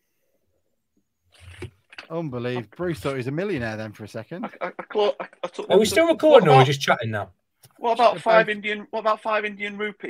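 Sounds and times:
man speaking: 2.1 - 10.0.

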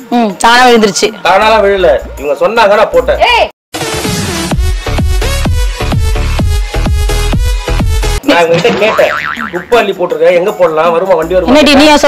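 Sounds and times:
comic boing sound effect: 8.7 - 9.8.

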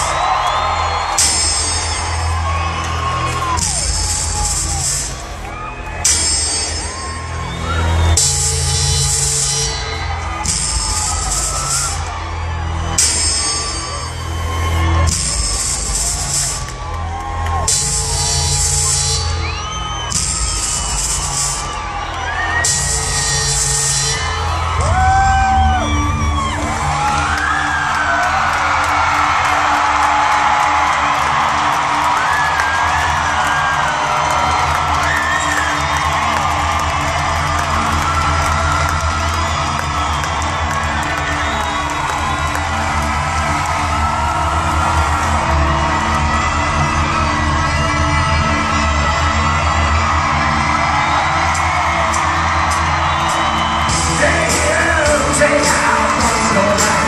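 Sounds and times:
crowd cheering and whooping: 0.0 - 57.0.

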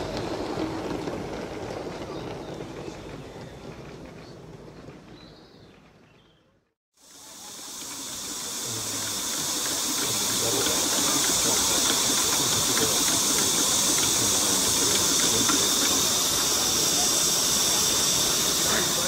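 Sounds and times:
steam hissing: 7.0 - 19.0.

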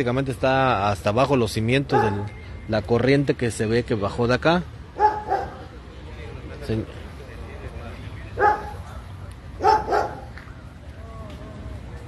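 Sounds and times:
low outdoor background noise: 0.0 - 12.0
dog barking: 1.9 - 2.3, 5.0 - 5.6, 8.4 - 8.8, 9.6 - 10.3.

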